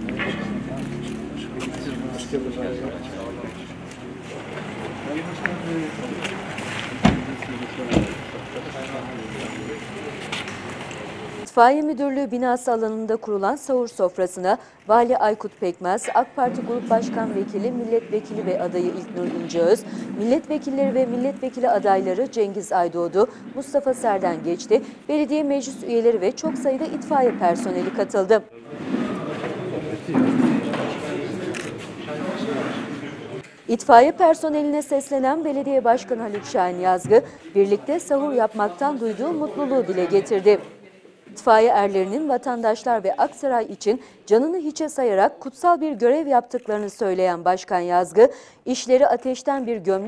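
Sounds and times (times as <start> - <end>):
indistinct group chatter: 0.0 - 48.3
men talking: 0.2 - 10.6, 28.6 - 33.5.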